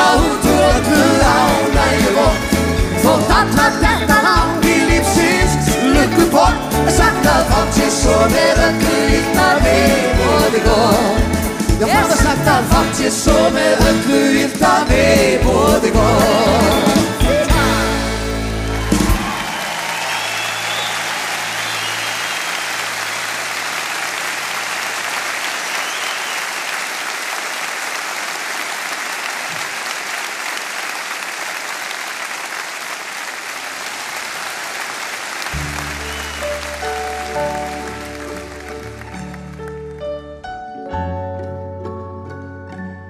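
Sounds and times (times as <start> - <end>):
concert audience applauding: 16.6 - 40.5.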